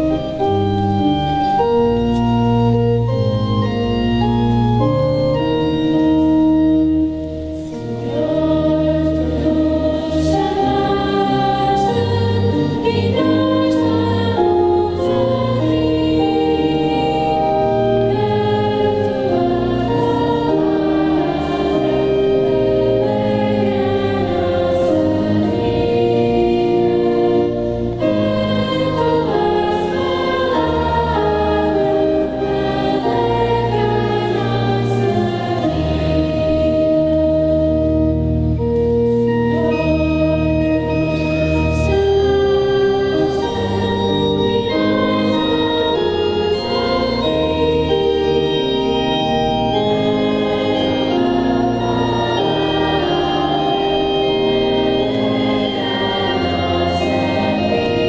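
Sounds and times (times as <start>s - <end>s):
choir singing a hymn: 0.0s - 58.0s
held low accompanying notes: 0.0s - 58.0s
organ: 0.0s - 58.0s.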